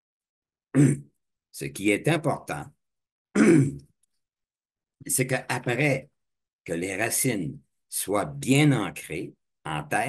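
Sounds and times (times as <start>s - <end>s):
man clearing his throat: 0.8s - 1.1s, 3.4s - 3.8s.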